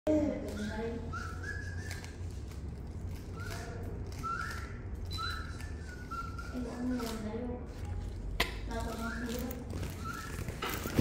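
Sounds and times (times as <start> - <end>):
person whistling sliding notes: 1.0 - 2.3, 3.3 - 7.1, 9.0 - 11.0.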